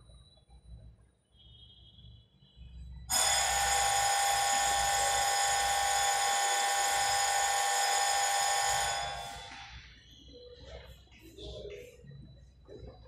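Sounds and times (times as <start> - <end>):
electric bell ringing: 3.1 - 9.8.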